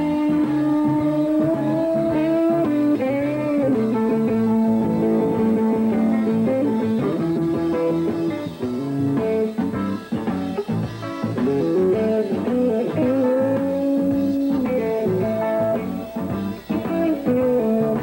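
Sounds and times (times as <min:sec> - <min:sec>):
bass guitar: 0:00.0 - 0:18.0
drum kit: 0:00.0 - 0:18.0
electric guitar with string bends: 0:00.0 - 0:18.0.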